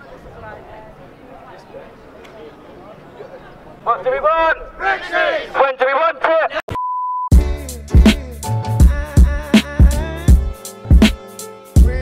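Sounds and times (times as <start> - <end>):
voices chanting: 3.9 - 6.7
hip hop music with heavy beat: 7.3 - 12.0.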